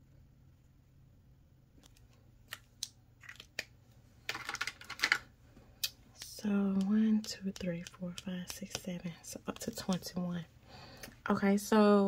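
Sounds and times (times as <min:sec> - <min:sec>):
nails clicking on paper: 0:05.8 - 0:10.1.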